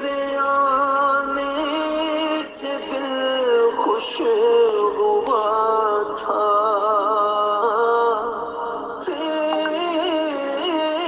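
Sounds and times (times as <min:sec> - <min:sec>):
person singing long held notes: 0:09.0 - 0:11.0.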